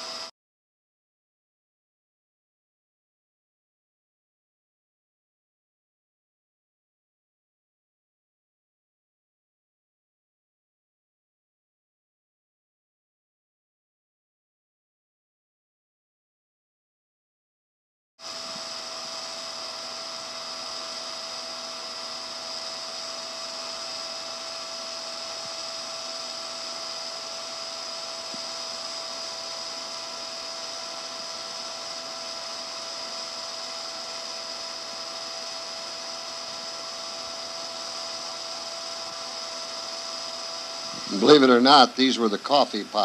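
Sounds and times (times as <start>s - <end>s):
whirring drone with high whine: 0.0s - 0.3s, 18.2s - 43.0s
mid-pitched hum: 18.2s - 43.0s.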